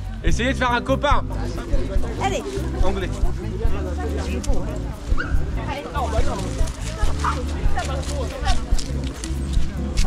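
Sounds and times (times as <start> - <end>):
people talking: 0.4 - 10.0.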